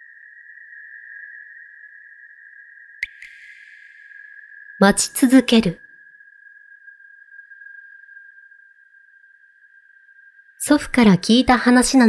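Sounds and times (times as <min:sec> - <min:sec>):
faint high-pitched steady tone: 0:00.0 - 0:12.0.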